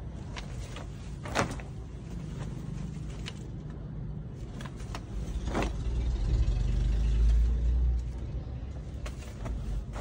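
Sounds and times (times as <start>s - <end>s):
denim jeans rustling and clicking: 0.0s - 6.2s, 7.2s - 10.0s.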